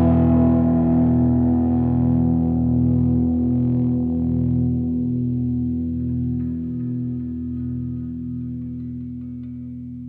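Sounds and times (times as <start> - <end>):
guitar sustained chord with effects: 0.0 - 10.0.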